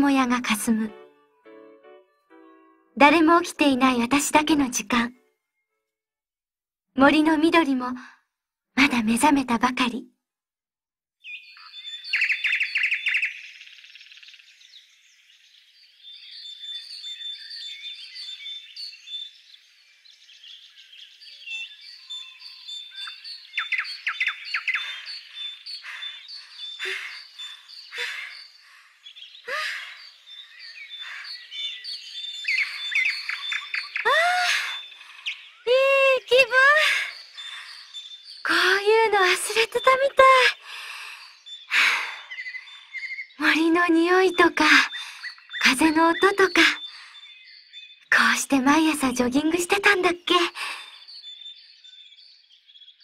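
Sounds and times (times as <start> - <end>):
songbirds chirping and trilling: 11.2 - 53.0.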